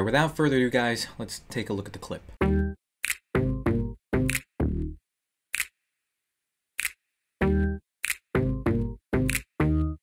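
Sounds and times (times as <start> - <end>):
sharp percussive clicks: 3.0 - 3.4, 4.2 - 4.5, 5.5 - 5.8, 6.8 - 7.1, 8.0 - 8.4, 9.2 - 9.6.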